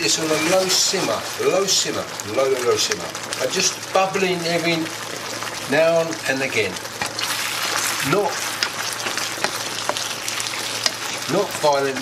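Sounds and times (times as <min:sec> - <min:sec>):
spatula stirring: 0:00.0 - 0:01.9, 0:06.8 - 0:12.0
food sizzling in a frying pan: 0:00.0 - 0:12.0.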